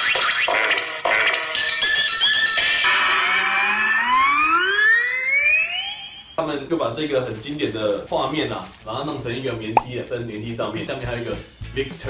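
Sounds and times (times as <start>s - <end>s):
music and effects: 2.1s - 6.4s
cartoon sound gliding upward: 2.9s - 6.3s.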